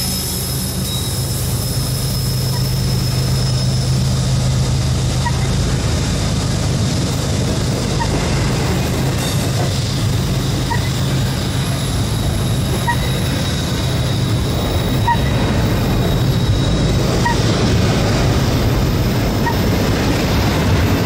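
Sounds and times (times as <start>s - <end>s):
freight train wheels rumbling on rail: 0.0s - 21.0s.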